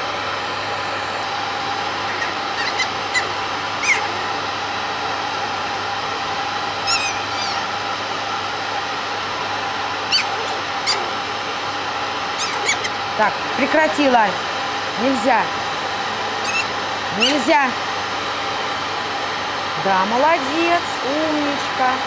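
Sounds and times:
grooming dryer blowing: 0.0 - 22.0
puppy whining and squealing: 2.0 - 4.4, 6.8 - 7.9, 10.0 - 11.5, 12.3 - 13.1, 16.4 - 17.6.

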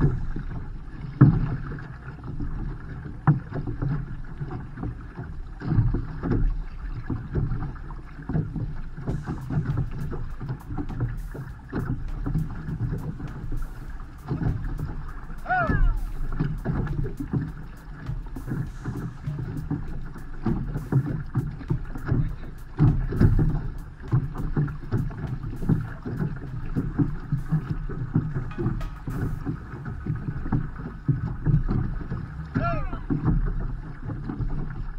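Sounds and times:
wind on microphone: 0.0 - 1.8, 8.4 - 33.4
water rushing along a hull: 0.0 - 34.9
brief pitched call: 15.4 - 16.0.

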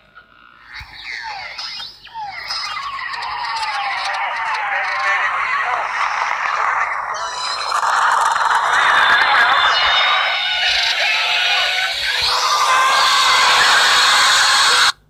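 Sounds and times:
harsh noise with whining tones: 0.0 - 15.0.

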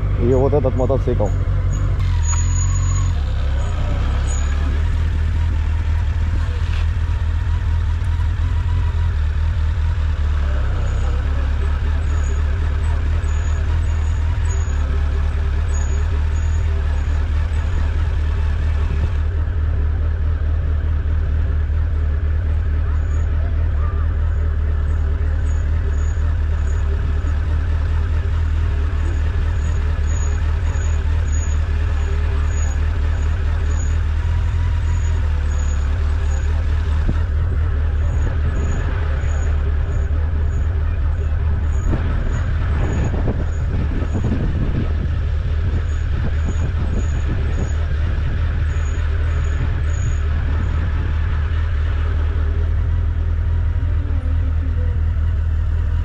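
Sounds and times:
motorcycle engine low rumble: 0.0 - 56.0.

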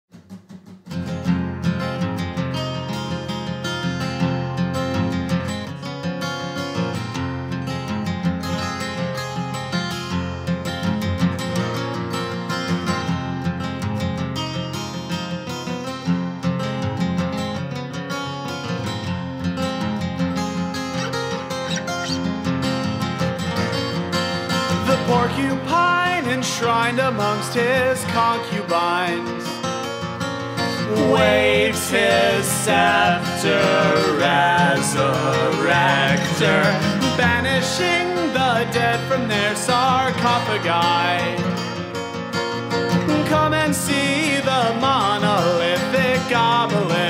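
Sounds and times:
acoustic guitar folk music: 0.1 - 47.0.

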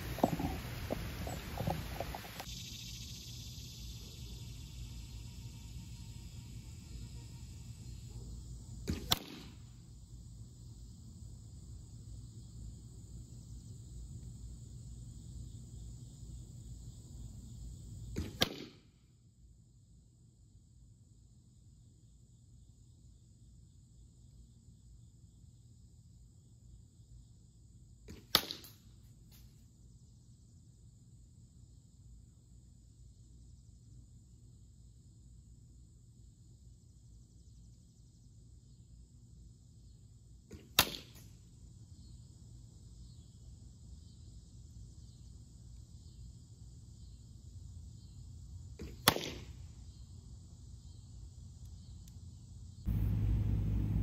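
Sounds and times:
arrows striking wooden target: 8.9 - 9.6, 18.2 - 18.8, 40.5 - 41.2, 48.8 - 49.5.

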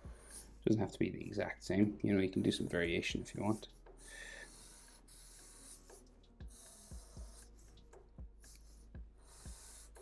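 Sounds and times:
marker scratching on paper: 0.0 - 0.6, 3.3 - 10.0.

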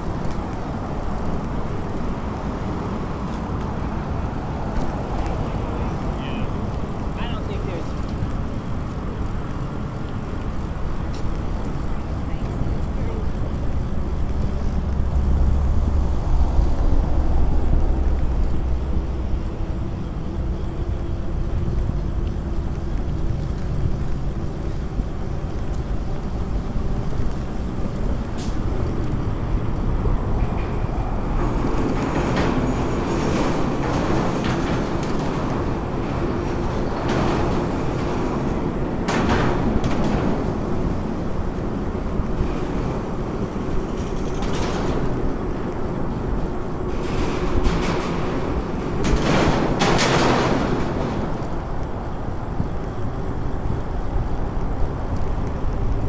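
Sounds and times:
bike tyre and ride noise: 0.0 - 56.0
wind buffeting microphone: 0.0 - 56.0
knocks and rattles: 31.4 - 40.9, 42.4 - 45.5, 46.4 - 51.9.

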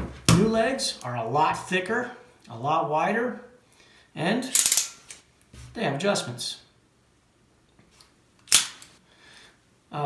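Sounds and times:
bipod snapping: 8.4 - 9.0.

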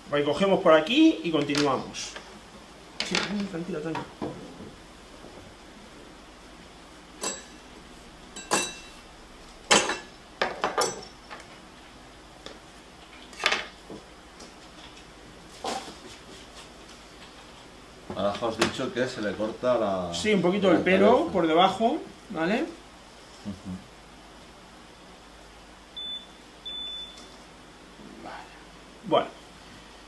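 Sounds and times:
utensils and bowls clinking: 7.2 - 7.6, 8.4 - 9.0, 9.7 - 11.4.

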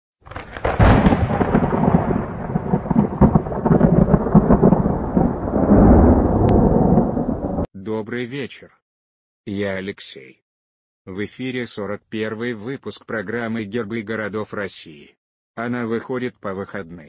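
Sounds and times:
thunderclap: 0.2 - 7.7
rumble of thunder: 0.3 - 7.7.

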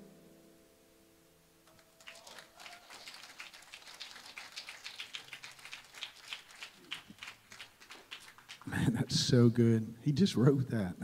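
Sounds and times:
faint scattered hand-clapping: 1.7 - 9.1.

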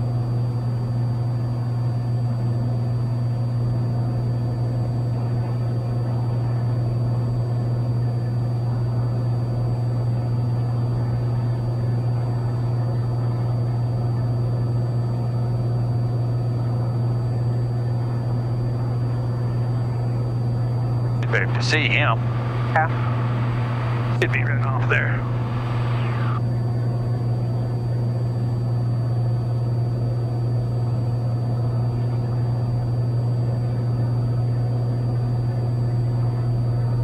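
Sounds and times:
propeller plane engine droning: 0.0 - 37.0.

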